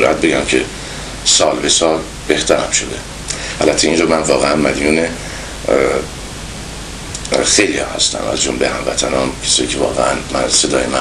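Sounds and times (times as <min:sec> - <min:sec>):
man speaking: 0:00.0 - 0:06.2, 0:07.2 - 0:11.0
recording hiss and hum: 0:00.0 - 0:11.0.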